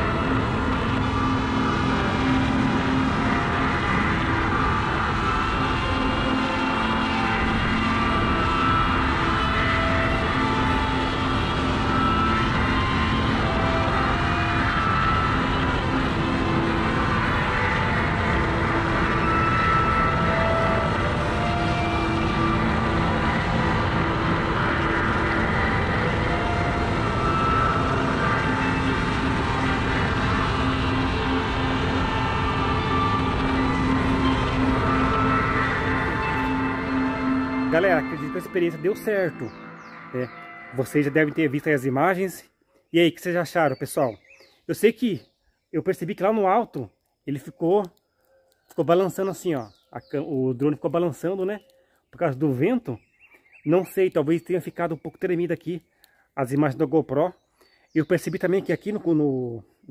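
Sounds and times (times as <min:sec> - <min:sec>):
drone propellers whirring: 0:00.0 - 0:42.2.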